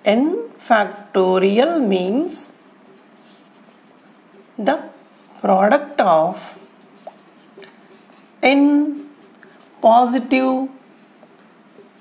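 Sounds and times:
marker writing on whiteboard: 0.5 - 10.2.

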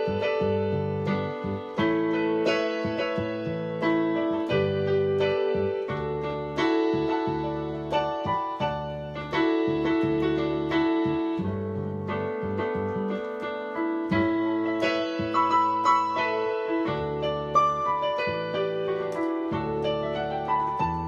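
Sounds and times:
electronic keyboard gospel chords: 0.0 - 21.0.

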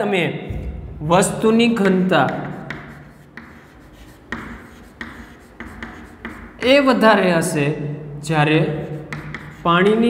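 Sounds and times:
man talking: 0.0 - 2.5
chalk scratching on chalkboard: 2.3 - 7.0, 8.7 - 10.0.

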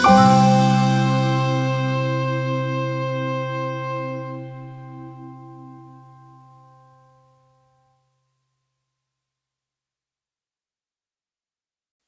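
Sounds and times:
sustained chord background music: 0.0 - 7.6.

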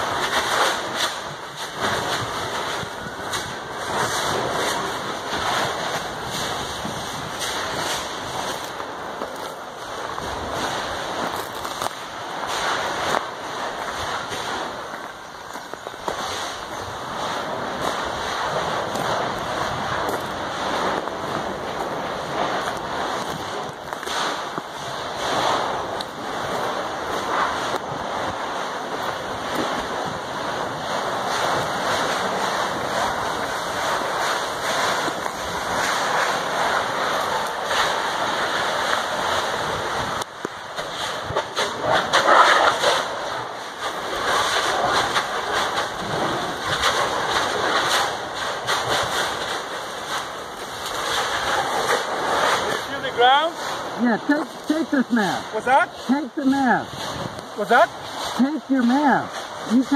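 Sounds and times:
crackles: 0.0 - 59.9
steam and gas hissing from ground: 0.0 - 59.9.

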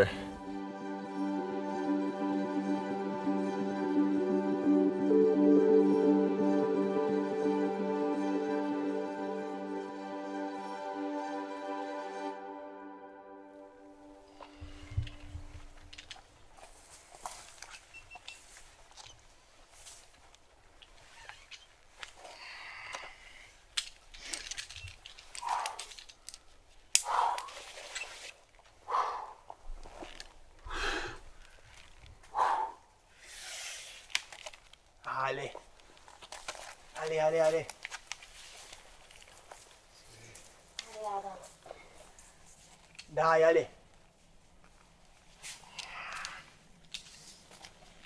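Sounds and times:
climber grunting exhalations: 27.0 - 27.7.

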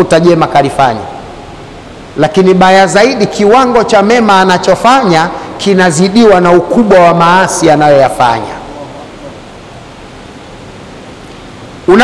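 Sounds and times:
man speaking: 0.0 - 1.2, 2.2 - 9.4
room and microphone hiss: 0.0 - 12.0.

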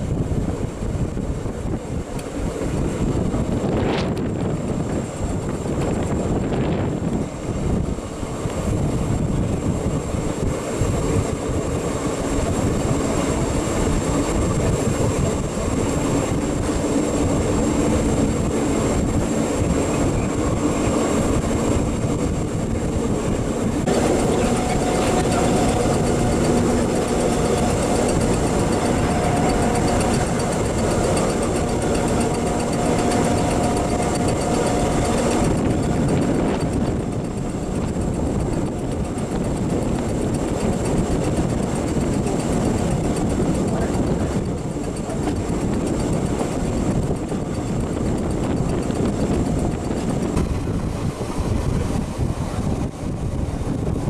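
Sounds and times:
steady whine: 0.0 - 54.0
train wheels rolling on rails: 0.0 - 54.0.

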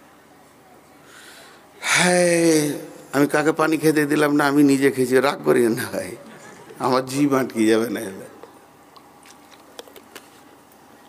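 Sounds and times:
man breathing in: 1.1 - 1.7.

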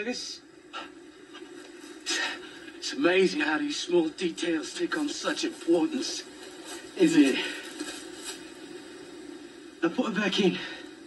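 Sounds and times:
faint hiss: 0.0 - 11.0
low steady hum: 0.0 - 11.0
man speaking: 2.1 - 7.8.

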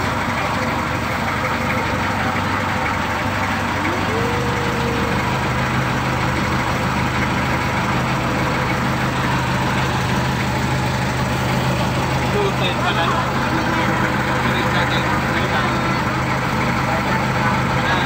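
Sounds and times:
boat engine running: 0.0 - 18.0.

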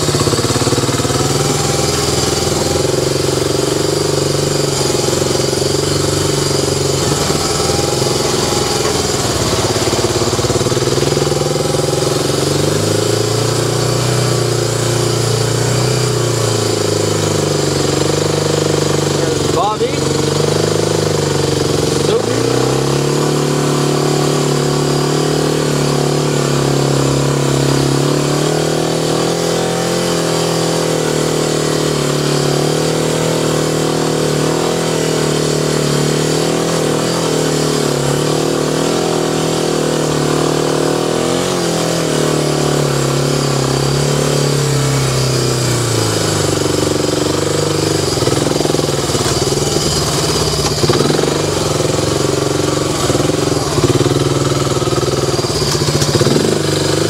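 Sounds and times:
atv engine running: 0.0 - 57.0.

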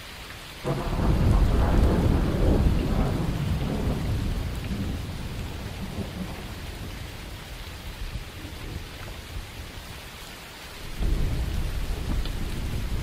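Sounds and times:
steady rain: 0.0 - 13.0
thunder rumbling: 0.6 - 9.5, 10.9 - 13.0.

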